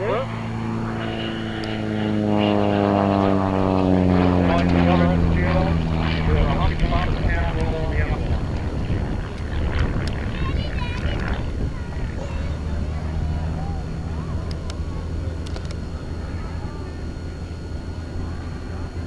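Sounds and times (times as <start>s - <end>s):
propeller plane flying past: 0.0s - 19.0s.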